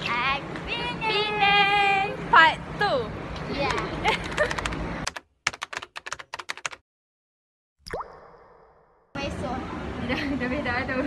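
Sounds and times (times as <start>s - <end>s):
rising pitch plop: 7.8s - 9.1s.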